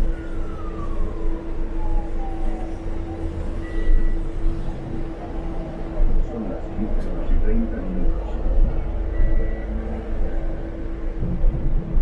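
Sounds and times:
bus cabin rumble and hum: 0.0s - 12.0s
drivetrain whine: 0.0s - 12.0s.

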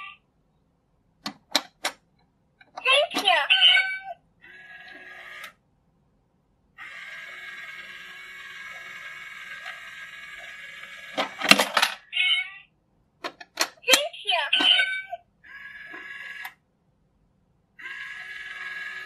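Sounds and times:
small electric motor whirring: 6.8s - 11.4s, 17.8s - 19.0s
recorded cat meow: 12.2s - 12.7s.

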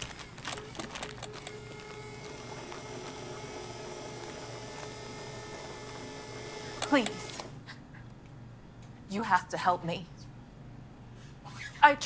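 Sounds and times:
electric hum: 0.0s - 9.2s.

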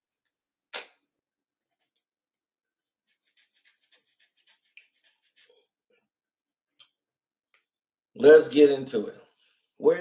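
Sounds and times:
fingernails scratching short hair: 3.1s - 5.6s.

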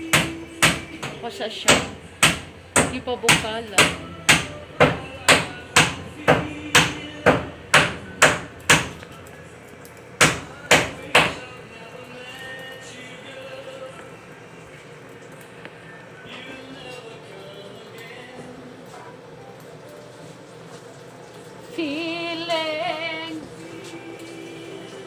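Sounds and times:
chopping on a cutting board: 0.1s - 9.0s, 10.2s - 11.4s.

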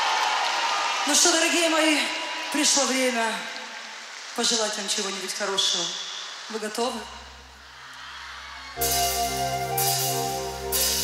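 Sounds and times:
hissing crowd noise: 0.0s - 11.0s.

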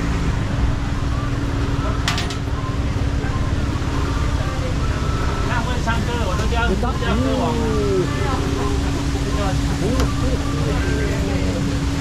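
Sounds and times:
constant hum: 0.0s - 12.0s
low street rumble: 0.0s - 12.0s
faint voices: 2.7s - 12.0s.

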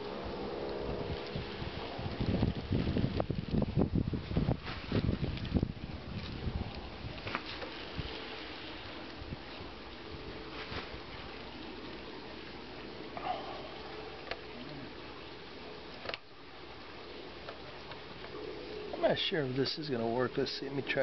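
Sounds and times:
background hiss: 7.2s - 21.0s.

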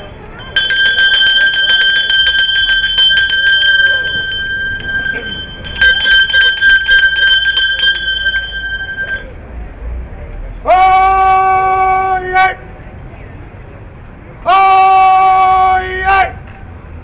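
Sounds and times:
handbell rung rapidly: 0.0s - 9.4s.

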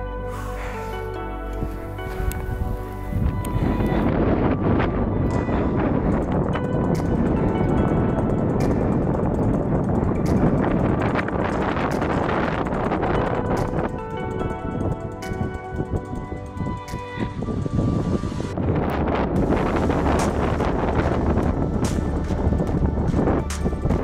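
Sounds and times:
background music: 0.0s - 24.0s
wind buffeting microphone: 0.0s - 24.0s
footsteps crunching in snow: 0.3s - 3.8s.

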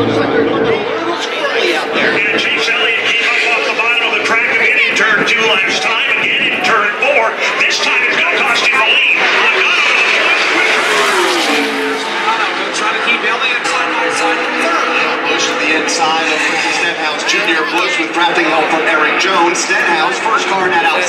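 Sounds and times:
race cars passing: 0.0s - 21.0s
voices: 0.0s - 21.0s.

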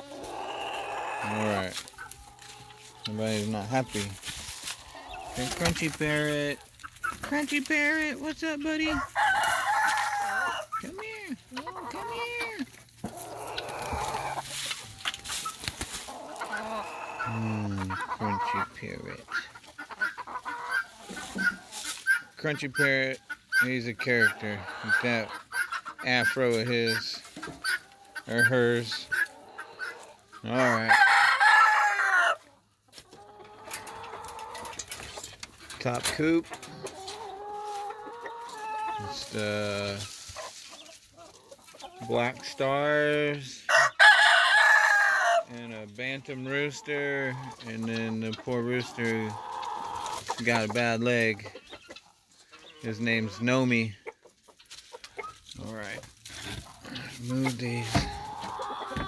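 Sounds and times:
chicken long drawn-out call: 0.0s - 3.0s, 11.6s - 14.5s, 16.1s - 17.6s, 29.1s - 32.5s
chickens clucking: 0.0s - 59.0s
rooster crowing: 9.1s - 10.6s, 30.9s - 32.4s, 43.7s - 45.4s.

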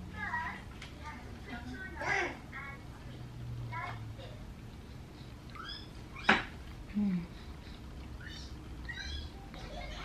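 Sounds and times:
child's voice: 0.0s - 4.5s.

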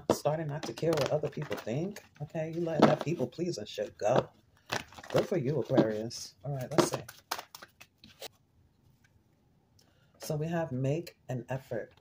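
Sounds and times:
quiet card handling: 0.1s - 9.2s
cards snapping and tapping: 6.7s - 7.9s.

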